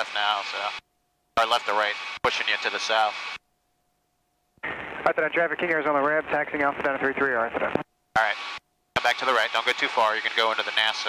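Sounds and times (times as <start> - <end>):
tinny radio transmission: 4.6 - 11.0
man speaking on intercom: 5.1 - 7.6.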